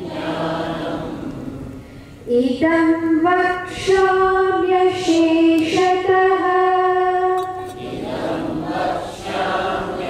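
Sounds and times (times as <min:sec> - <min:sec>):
group chanting in unison: 0:00.0 - 0:01.7, 0:07.6 - 0:10.0.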